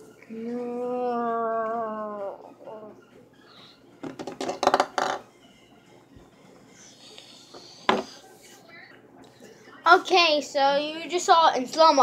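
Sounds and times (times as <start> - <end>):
candies knocking on tabletop: 4.0 - 5.2.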